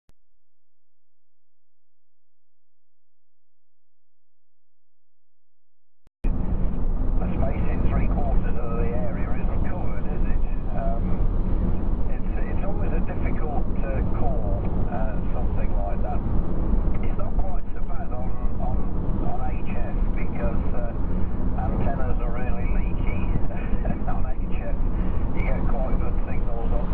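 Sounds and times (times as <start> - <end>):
car tyre and engine rumble: 6.2 - 26.9
indistinct voices talking: 7.2 - 11.2, 12.1 - 16.2, 17.0 - 26.9.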